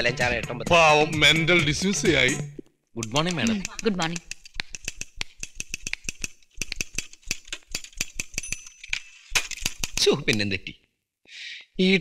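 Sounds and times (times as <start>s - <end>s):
typewriter keys clicking: 3.0s - 8.6s, 9.4s - 10.4s.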